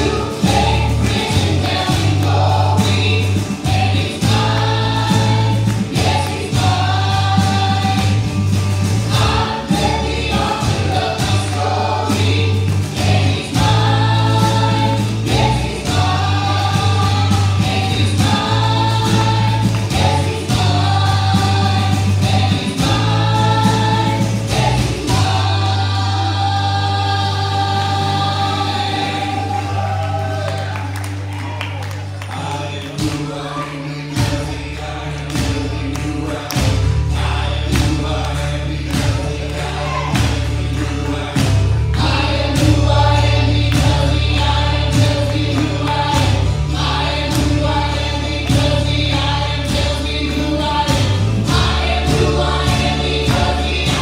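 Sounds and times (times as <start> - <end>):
acoustic and electric guitars: 0.0 - 54.0
steady bass line: 0.0 - 54.0
voices singing in harmony: 0.0 - 54.0.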